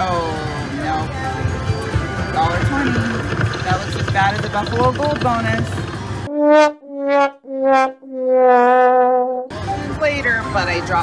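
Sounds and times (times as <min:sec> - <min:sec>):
sad trombone notes: 0:06.3 - 0:09.4.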